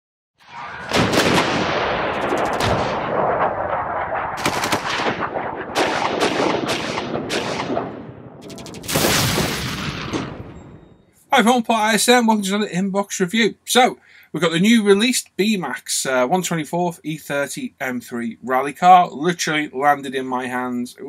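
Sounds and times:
sharp hits: 0.4 - 11.1.

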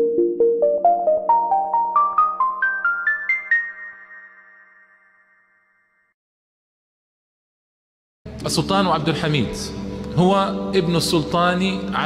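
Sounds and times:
rising chiming jingle: 1.3 - 6.1.

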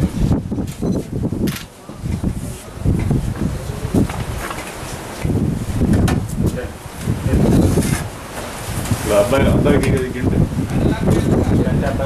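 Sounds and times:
people talking: 1.8 - 4.2, 6.4 - 7.7, 9.0 - 12.0.

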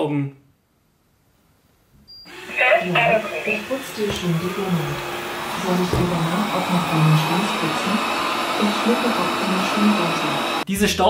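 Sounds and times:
robot vacuum whirring: 2.3 - 10.7.

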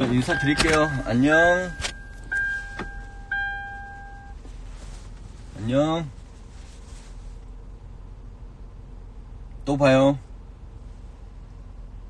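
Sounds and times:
car warning chime dinging: 0.0 - 4.4.

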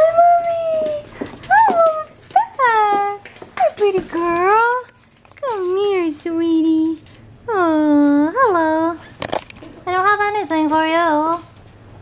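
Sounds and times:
claws clicking on wooden floor: 0.1 - 7.3.

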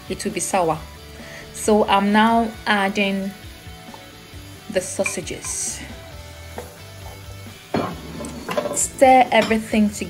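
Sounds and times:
background music: 0.0 - 10.0
sausage sizzling in a frying pan: 0.0 - 10.0
wooden spatula scraping a pan: 6.6 - 8.9.

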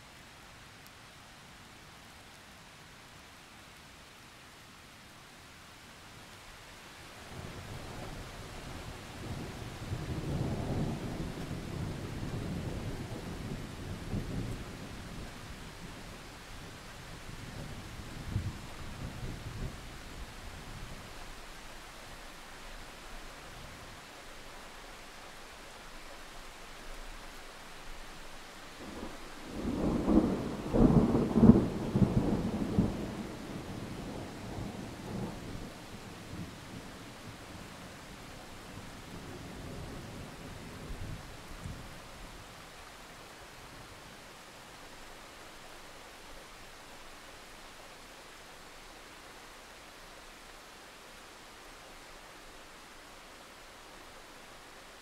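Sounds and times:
heavy rain hissing: 6.1 - 55.0
rolling thunder: 28.9 - 36.6.

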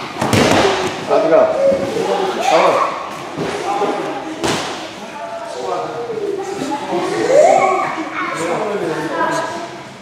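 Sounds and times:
voices in echoing hall: 0.0 - 10.0.

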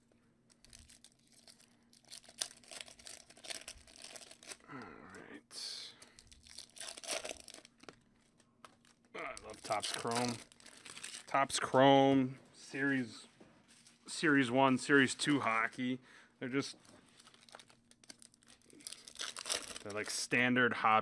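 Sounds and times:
foil wrapper tearing and crinkling: 0.5 - 4.8, 6.0 - 11.4, 17.1 - 20.2.

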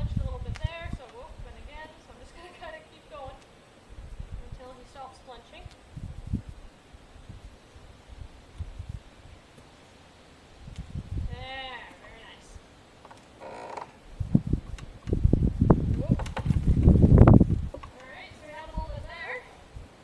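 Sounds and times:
wind buffeting microphone: 0.0 - 9.4, 10.5 - 11.9, 14.0 - 20.0
horse hoof thumps: 15.8 - 18.1.

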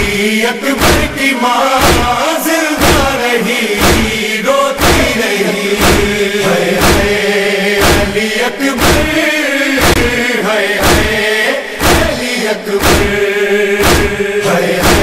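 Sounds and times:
voices chanting a lament: 0.0 - 15.0
chest-beating thumps: 0.8 - 3.2, 3.8 - 4.2, 4.8 - 5.2, 5.8 - 7.2, 7.8 - 8.2, 8.8 - 10.2, 10.8 - 11.2, 11.8 - 15.0.

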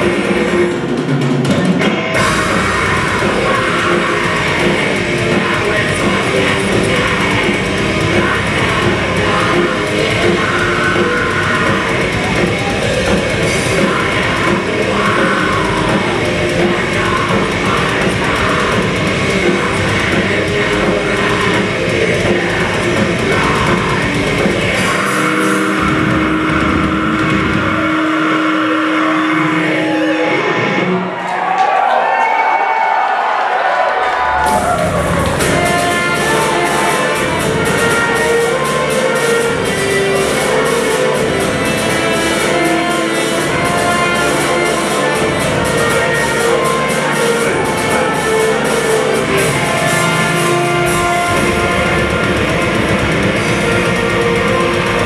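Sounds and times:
distorted electric guitars chord: 0.0 - 31.1, 34.5 - 55.0
crowd noise: 0.0 - 55.0
drums: 0.0 - 55.0
heavy metal band playing: 0.0 - 55.0.

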